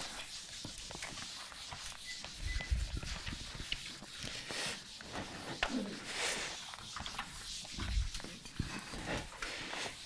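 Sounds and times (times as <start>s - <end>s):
marker squeaking on whiteboard: 0.0s - 8.6s.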